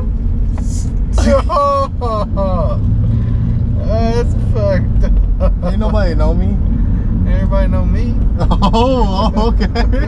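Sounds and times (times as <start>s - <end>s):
car engine and tyres rumbling: 0.0s - 10.0s
men laughing and talking: 1.2s - 2.9s, 3.9s - 6.6s, 8.2s - 10.0s.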